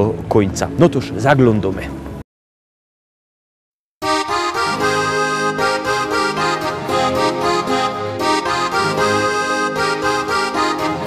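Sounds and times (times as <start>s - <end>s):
accordion playing: 4.0s - 11.0s.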